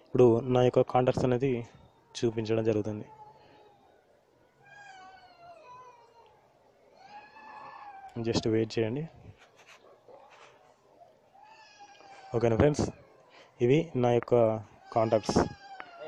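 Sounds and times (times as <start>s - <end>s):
faint high-pitched cries: 1.2s - 13.7s, 14.3s - 16.0s
man speaking: 8.2s - 9.2s, 13.6s - 15.6s.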